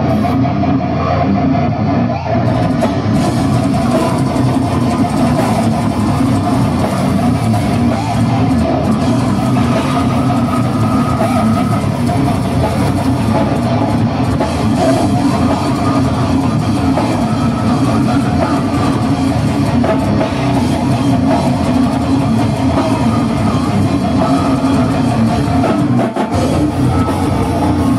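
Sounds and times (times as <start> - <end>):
drum kit: 0.0 - 27.9
electric guitar riffing: 0.0 - 27.9.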